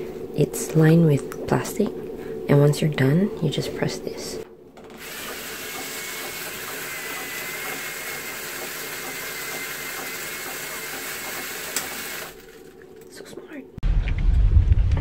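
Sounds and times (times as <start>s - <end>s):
toilet seat cover mechanism whirring: 4.8s - 12.8s.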